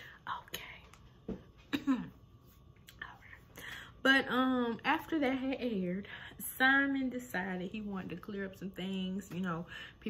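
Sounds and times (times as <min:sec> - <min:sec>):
woman coughing: 0:01.6 - 0:02.2
woman speaking: 0:04.0 - 0:10.0.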